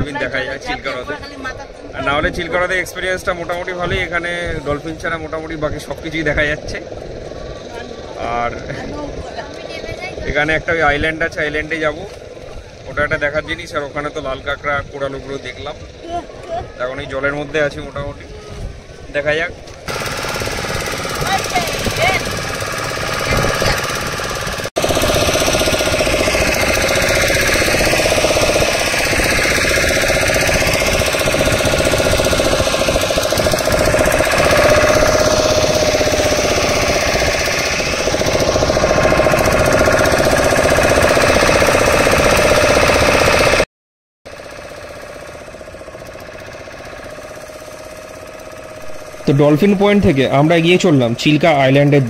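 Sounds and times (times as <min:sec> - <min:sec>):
boat engine knocking: 0:00.0 - 0:43.6, 0:44.3 - 0:52.0.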